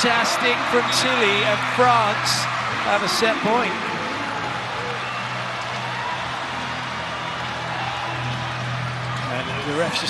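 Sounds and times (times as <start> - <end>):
crowd noise: 0.0 - 10.0
music over sound system: 0.0 - 10.0.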